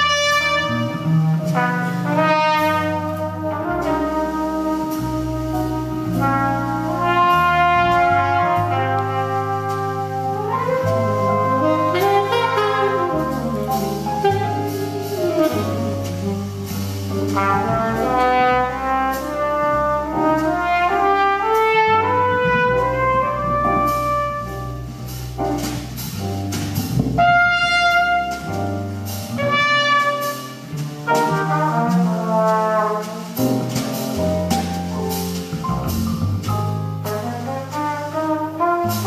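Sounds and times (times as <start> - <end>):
jazz trumpet: 0.0 - 39.0
low sustained bass notes: 0.0 - 39.0.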